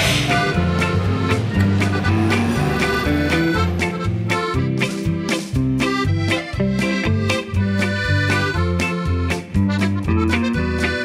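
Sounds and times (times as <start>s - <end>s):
upbeat instrumental music: 0.0s - 11.0s.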